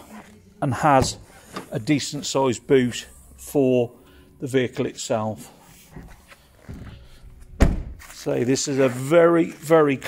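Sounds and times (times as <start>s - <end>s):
tailgate shutting thunk: 7.5s - 8.0s.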